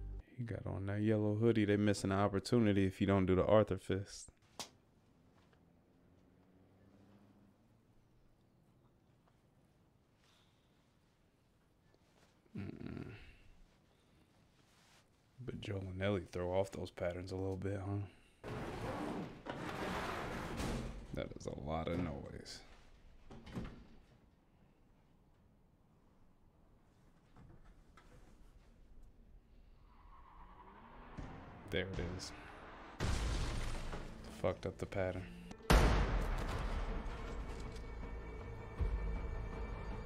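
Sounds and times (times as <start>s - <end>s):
reverberating bang tail: 35.7s - 37.5s.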